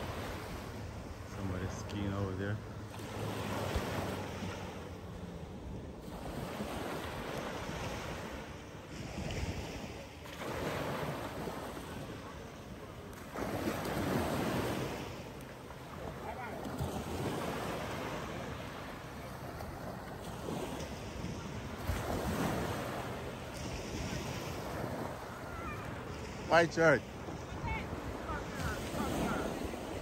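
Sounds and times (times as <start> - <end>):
sea waves washing onto beach: 0.0 - 30.0.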